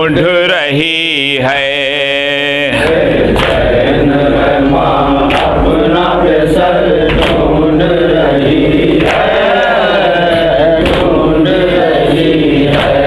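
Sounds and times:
men chanting a lament: 0.0 - 13.0.

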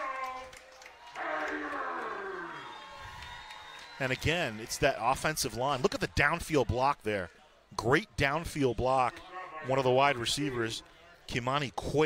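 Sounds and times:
tiger roar falling in pitch: 1.2 - 2.6.

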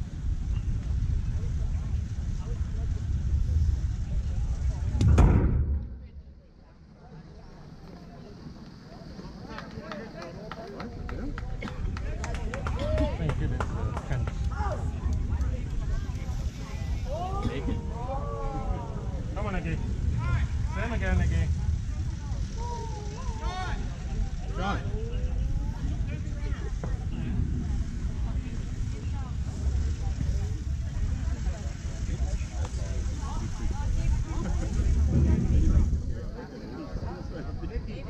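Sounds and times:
wind rumble on microphone: 0.0 - 6.5, 10.9 - 38.0
voices calling out and chanting: 9.0 - 38.0.

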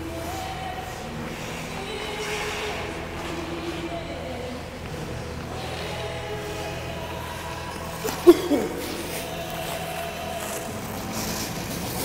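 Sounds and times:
mechanical hum: 0.0 - 12.0
skate blades hissing on ice: 8.1 - 12.0.

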